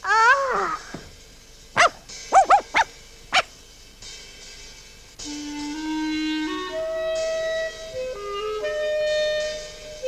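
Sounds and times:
small dog yapping: 1.8 - 3.5.

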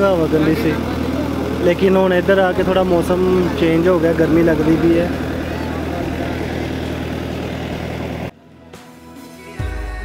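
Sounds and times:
boat engine running: 0.0 - 8.3
background music: 8.3 - 10.0.

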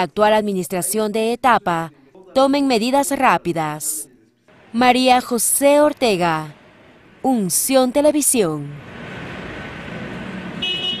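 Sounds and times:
street traffic noise: 4.5 - 11.0
horn toot: 10.6 - 11.0.

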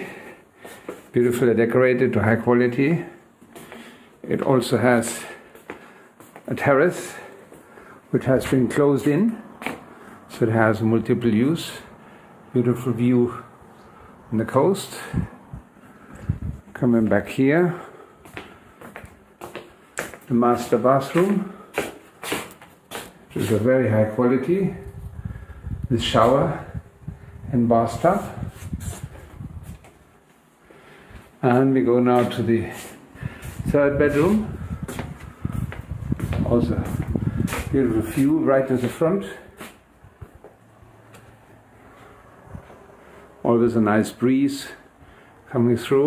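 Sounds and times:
footsteps on tiled floor: 0.1 - 1.4, 3.0 - 10.3, 15.0 - 26.8, 27.8 - 43.4.

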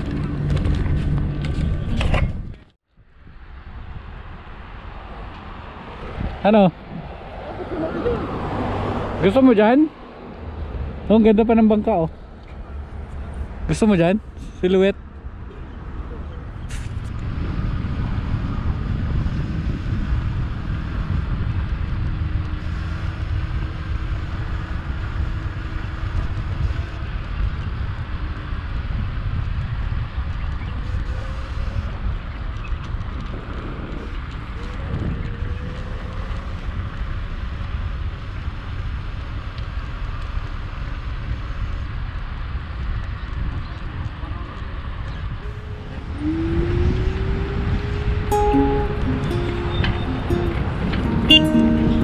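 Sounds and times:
wind noise on microphone: 0.0 - 9.2, 15.2 - 52.0.

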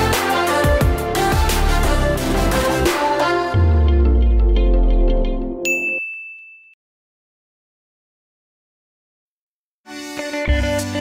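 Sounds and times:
intro music with deep bass: 3.5 - 5.6
notification bell ding: 5.6 - 6.8.

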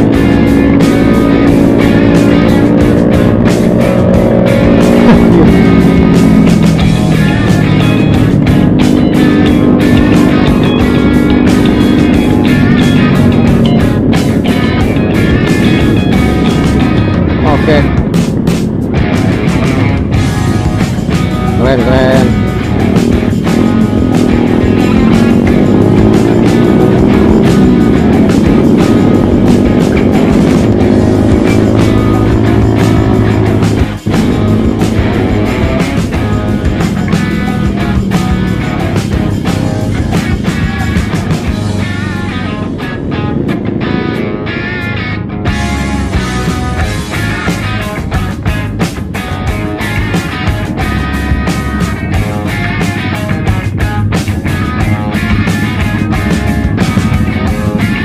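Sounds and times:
motorcycle engine running: 0.0 - 58.0
wind rumble on microphone: 8.1 - 58.0.

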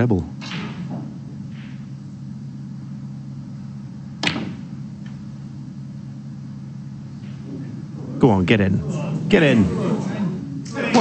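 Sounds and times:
steady low hum: 0.0 - 11.0
cue striking ball click: 4.2 - 5.2.

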